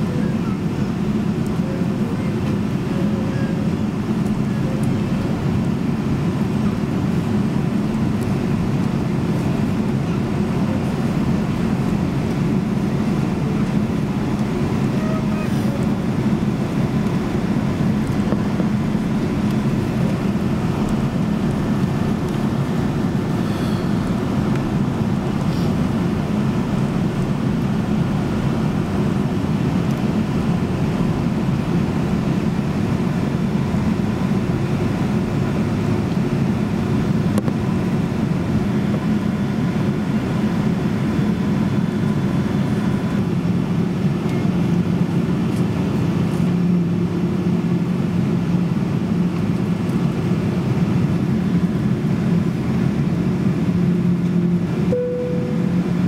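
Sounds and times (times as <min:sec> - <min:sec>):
airplane cabin engine drone: 0:00.0 - 0:56.0.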